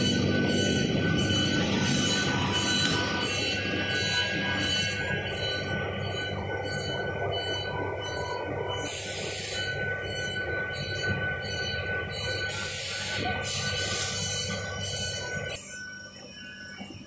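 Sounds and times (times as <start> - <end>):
machine humming and whining: 0.0 - 17.0.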